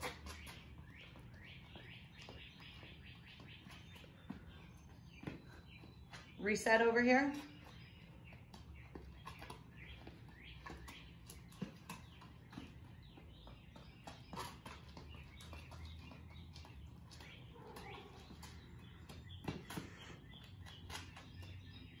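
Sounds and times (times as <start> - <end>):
faint bird chirps: 0.0 - 6.4, 7.4 - 22.0
sneaker taps on concrete: 0.0 - 21.8.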